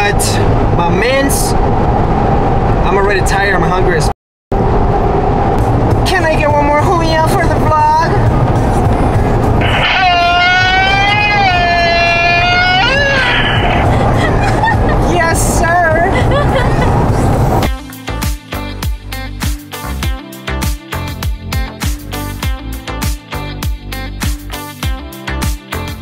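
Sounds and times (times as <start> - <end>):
car road noise: 0.0 - 18.2.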